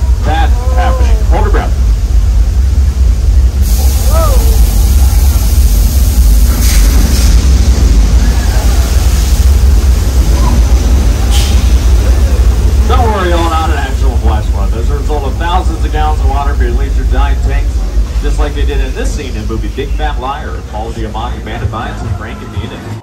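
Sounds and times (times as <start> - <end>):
water rushing and splashing: 0.0 - 22.0
deep rumble: 0.0 - 23.0.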